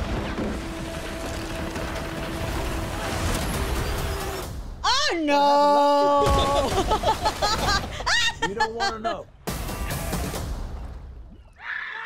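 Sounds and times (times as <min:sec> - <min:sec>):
crashing water: 0:06.2 - 0:08.1
wood breaking: 0:06.2 - 0:08.1.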